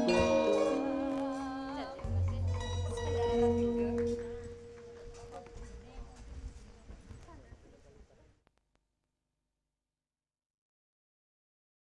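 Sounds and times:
gamelan note ringing: 0:00.0 - 0:01.2, 0:01.9 - 0:05.6
low murmured voices: 0:00.0 - 0:08.4.

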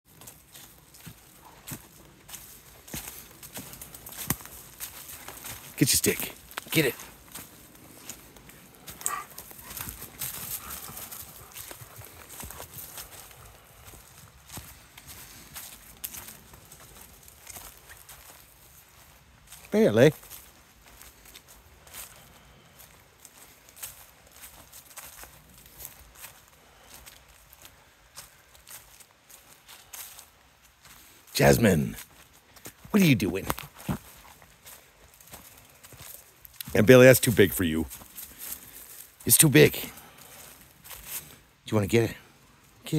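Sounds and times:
footsteps on dry leaves: 0:00.1 - 0:41.6.

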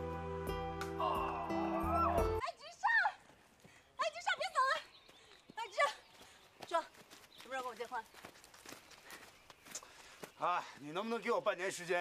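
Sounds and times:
light footsteps: 0:03.1 - 0:12.0.

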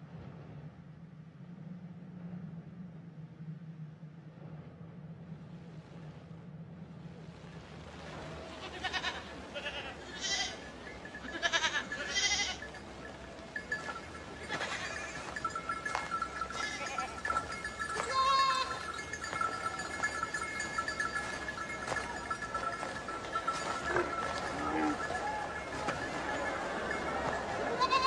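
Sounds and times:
goats bleating: 0:08.1 - 0:12.9, 0:13.5 - 0:28.0.

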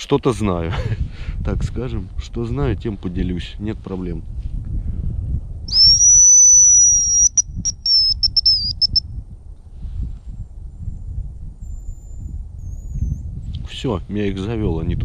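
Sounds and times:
wind rumbling on microphone: 0:00.0 - 0:15.0
high thin decoy whistle: 0:05.7 - 0:09.0.

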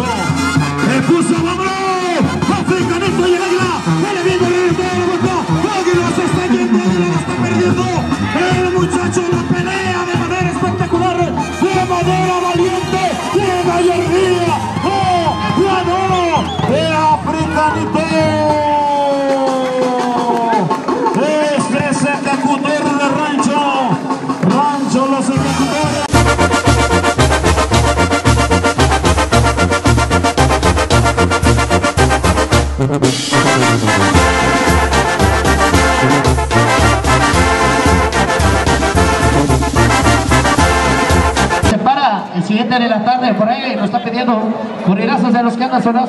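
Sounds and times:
brass band music: 0:00.0 - 0:43.6.

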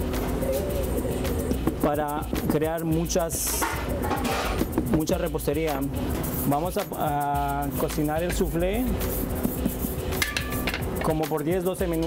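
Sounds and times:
dishes and utensils clinking: 0:03.4 - 0:05.1, 0:09.5 - 0:11.3.

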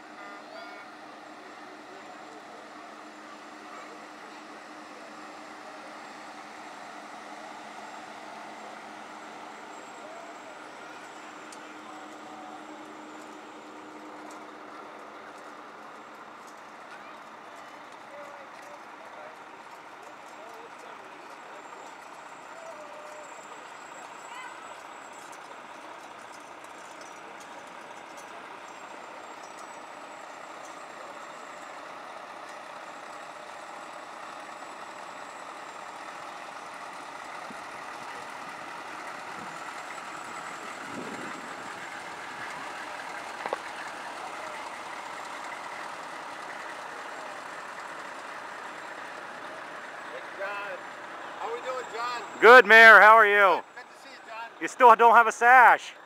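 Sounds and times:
van engine: 0:00.0 - 0:56.0
vehicles rolling past slowly: 0:00.0 - 0:56.0
faint crowd chatter: 0:00.1 - 0:13.1.

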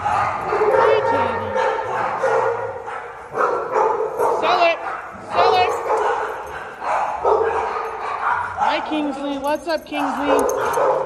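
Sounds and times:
dogs barking and yipping: 0:00.0 - 0:11.0.

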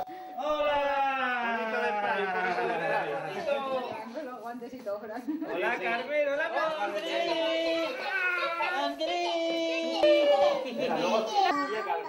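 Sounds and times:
voices calling out a greeting: 0:06.6 - 0:11.7.

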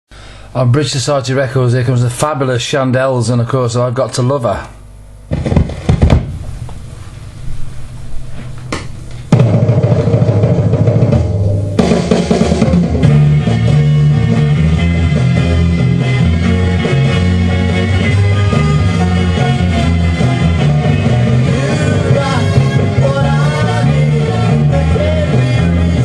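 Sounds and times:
soul record playing: 0:05.0 - 0:26.0
sharp drum hits: 0:05.3 - 0:06.8, 0:09.3 - 0:13.3.

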